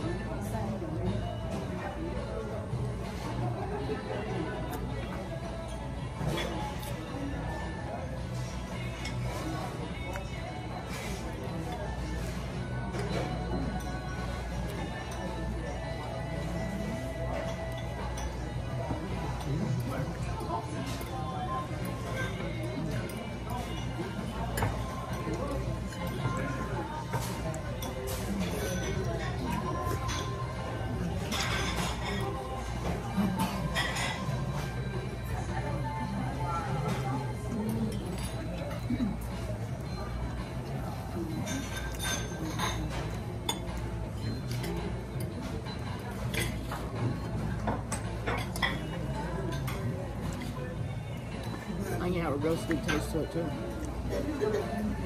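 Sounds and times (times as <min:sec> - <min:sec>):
faint background murmur: 0:00.0 - 0:55.0
tableware clinking: 0:04.6 - 0:36.0, 0:36.7 - 0:55.0.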